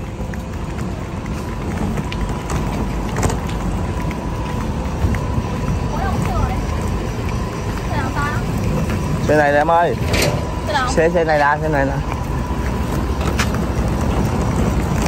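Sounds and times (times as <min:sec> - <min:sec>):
buses idling: 0:00.0 - 0:15.0
suitcase wheels rolling on pavement: 0:00.0 - 0:15.0.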